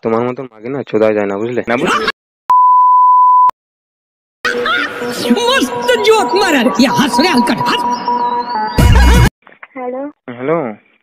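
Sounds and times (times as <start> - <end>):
electronic beep: 5.8 - 9.3.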